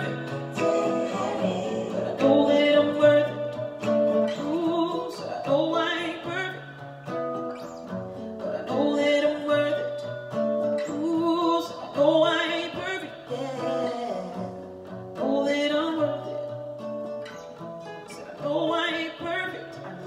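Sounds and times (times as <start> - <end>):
woman singing: 0.0 - 6.9, 7.7 - 17.1, 18.1 - 20.0
strummed acoustic guitar: 0.0 - 20.0.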